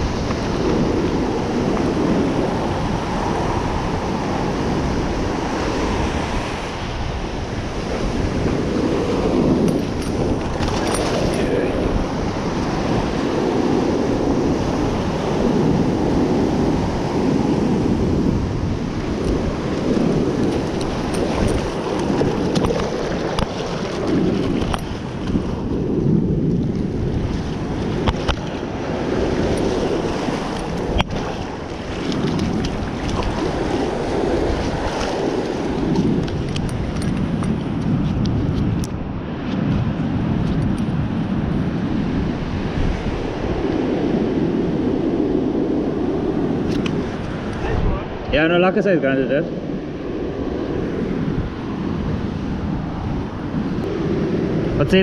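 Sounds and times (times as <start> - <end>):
surf washing up a sandy beach: 0.0 - 55.0
wind noise on microphone: 0.0 - 55.0.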